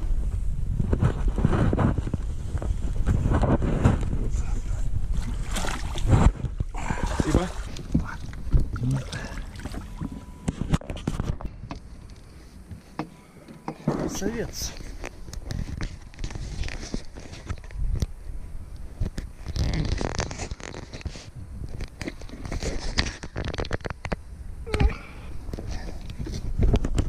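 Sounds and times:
wind buffeting microphone: 0.0 - 12.0, 13.9 - 27.0.

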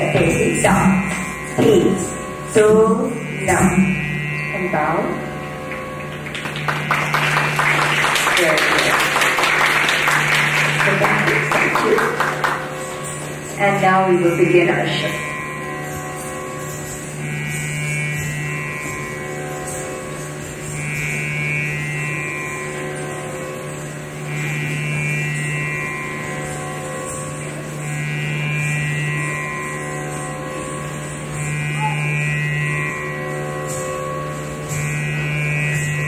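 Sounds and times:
buzzing low musical drone: 0.0 - 36.0.

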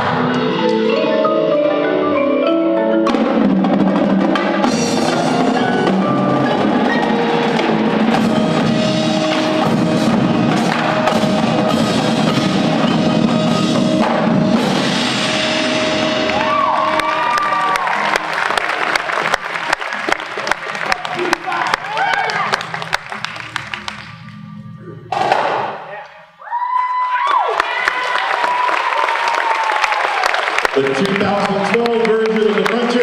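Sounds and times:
percussion ensemble held tone: 0.0 - 26.0
audience applause and cheering: 15.2 - 24.5, 26.4 - 33.0.

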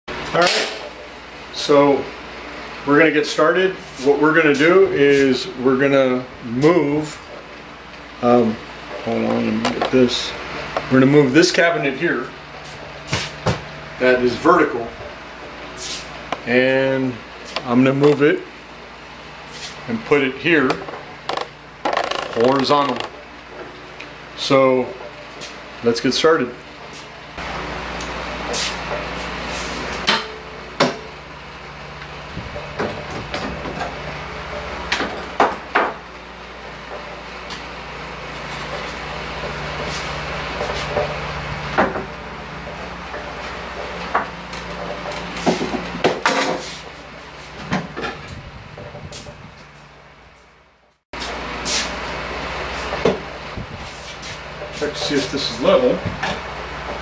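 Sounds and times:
steady background hum: 0.1 - 57.0.

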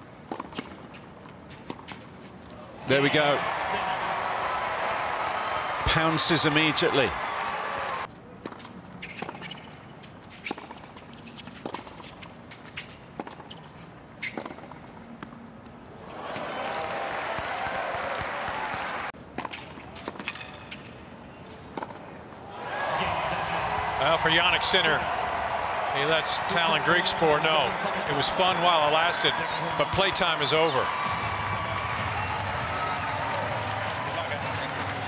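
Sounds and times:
crowd applauding and cheering: 2.9 - 8.1, 16.1 - 19.1, 22.6 - 35.0.

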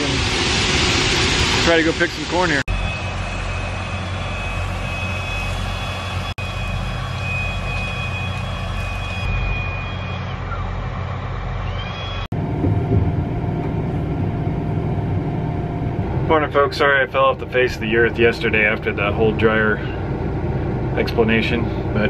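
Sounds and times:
thin high whine: 0.0 - 11.0
machinery engines droning: 0.0 - 22.0.

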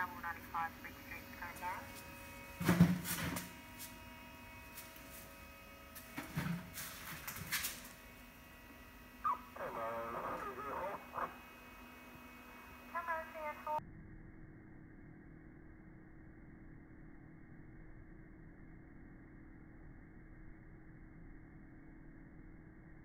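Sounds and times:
radio voice traffic from scanners: 0.0 - 2.4, 9.2 - 13.8
dull steady hum: 0.0 - 23.0.

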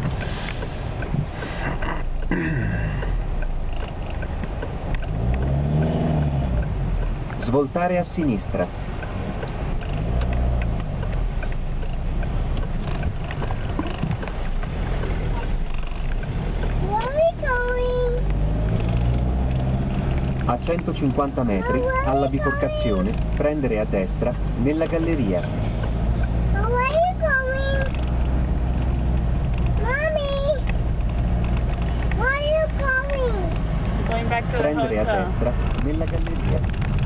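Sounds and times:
car engine and road noise: 0.0 - 37.0.

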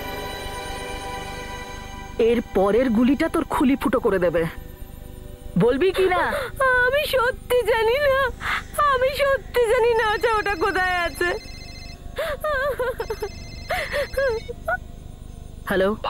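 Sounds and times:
woman talking: 2.2 - 4.6, 5.6 - 11.4, 15.7 - 16.0
mobile phone ringing: 9.6 - 14.7.

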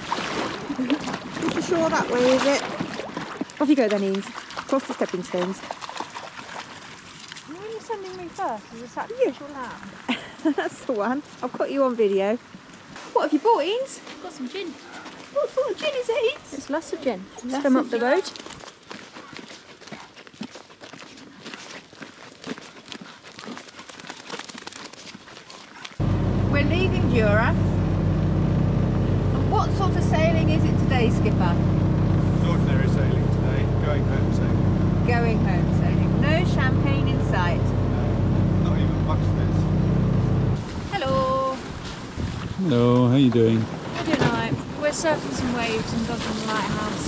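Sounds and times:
boat engine humming: 0.6 - 2.8, 26.0 - 42.2, 43.2 - 47.0
voices calling: 26.0 - 41.2.

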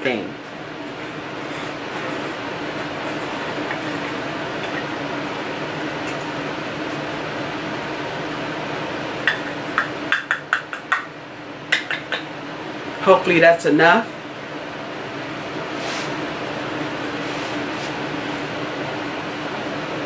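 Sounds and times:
room hum and hiss: 0.0 - 20.0.

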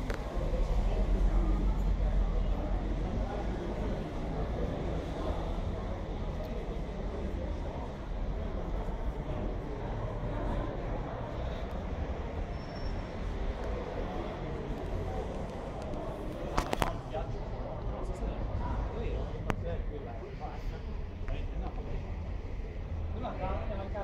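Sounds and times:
low rumbling background noise: 0.0 - 24.0.

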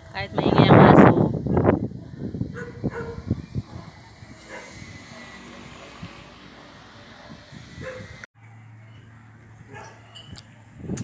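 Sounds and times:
dog barking: 2.5 - 5.4, 7.2 - 8.2, 9.7 - 10.1.

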